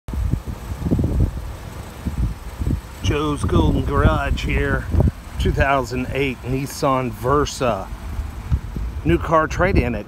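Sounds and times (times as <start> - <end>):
wind buffeting microphone: 0.1 - 6.6, 7.2 - 10.0.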